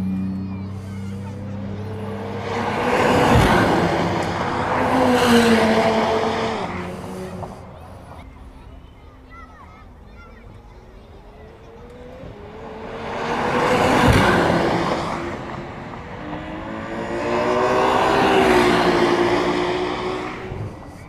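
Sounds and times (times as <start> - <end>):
race car engine passing: 0.0 - 9.8, 10.9 - 21.0.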